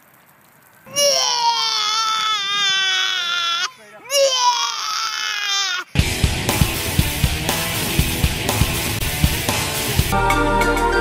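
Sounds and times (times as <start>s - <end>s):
young child crying: 0.9s - 6.0s.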